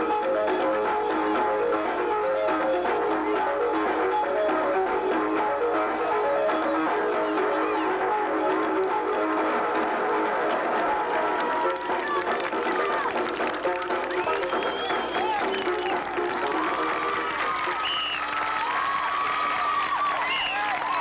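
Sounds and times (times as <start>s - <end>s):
crowd voices: 0.0s - 21.0s
marching band playing: 1.2s - 18.0s.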